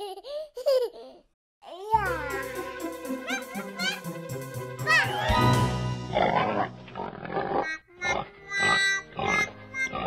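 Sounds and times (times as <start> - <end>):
light background music: 1.9 - 7.0
pig grunting: 6.1 - 10.0.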